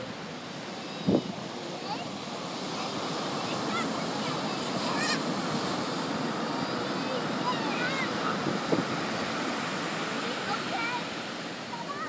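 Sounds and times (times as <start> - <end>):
faint children's voices calling: 0.0 - 12.0
ocean surf breaking: 0.0 - 12.0.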